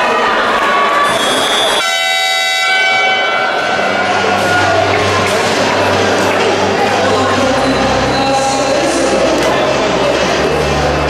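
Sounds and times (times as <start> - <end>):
crowd noise in sports hall: 0.0 - 11.0
loud horn blast: 1.8 - 5.4.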